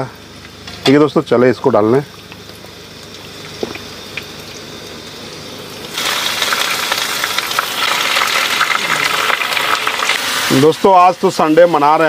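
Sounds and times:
low hiss from pan: 0.0s - 12.0s
meat sizzling in hot oil: 0.0s - 12.0s.

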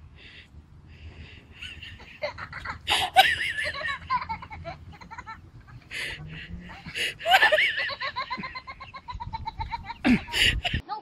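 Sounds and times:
person laughing: 1.5s - 10.8s.

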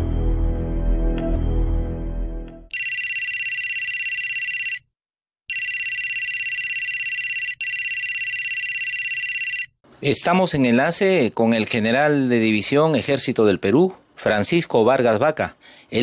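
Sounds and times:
telephone ringing electronic trill: 2.7s - 4.9s, 5.5s - 9.8s.

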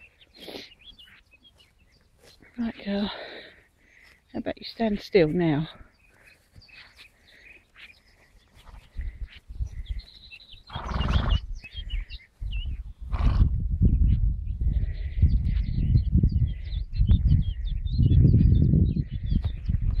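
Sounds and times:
small birds singing: 0.0s - 20.0s
gusting rumble on microphone: 8.6s - 20.0s.

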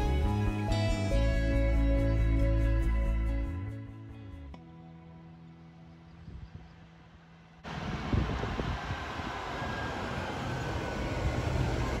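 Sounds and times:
road and tyre noise: 6.5s - 12.0s
bus passing close by: 7.6s - 12.0s.

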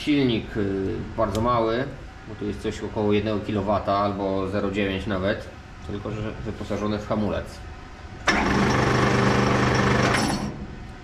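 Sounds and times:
electric motor humming: 8.2s - 10.6s.

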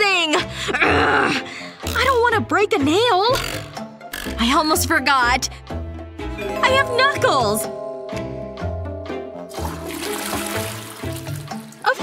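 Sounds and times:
background music: 0.0s - 12.0s
toilet flushing: 9.5s - 12.0s.

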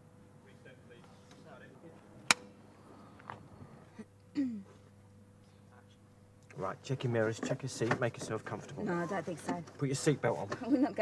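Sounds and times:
clapperboard snapping shut: 2.2s - 2.5s.

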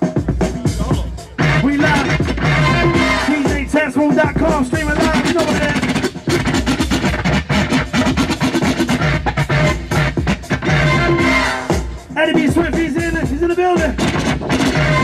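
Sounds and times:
hip-hop beat over speakers: 0.0s - 15.0s
record scratching: 0.7s - 15.0s.

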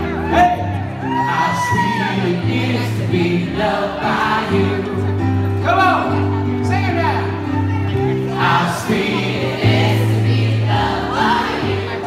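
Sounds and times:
electric keyboard accompaniment: 0.0s - 12.0s
man singing into microphone: 1.2s - 5.1s.

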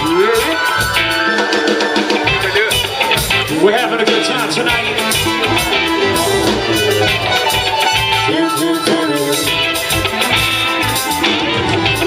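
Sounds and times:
drums: 0.0s - 12.0s
guitar: 0.0s - 12.0s
live band playing loud music: 0.0s - 12.0s.

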